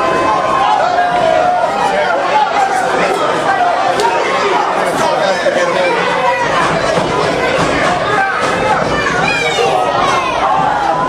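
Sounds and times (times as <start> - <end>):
crowd chattering and calling out: 0.0 - 11.0.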